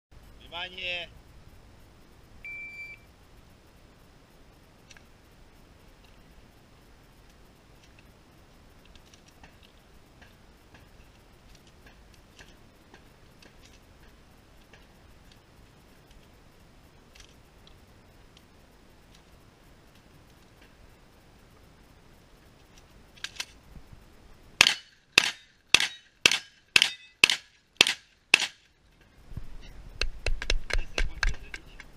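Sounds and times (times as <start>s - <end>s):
shot timer beep: 2.4s - 3.0s
gunshots from a long gun: 24.6s - 28.6s.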